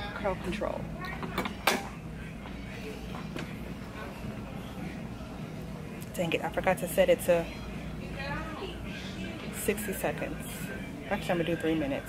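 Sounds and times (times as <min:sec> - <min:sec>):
low store background hum: 0:00.0 - 0:12.0.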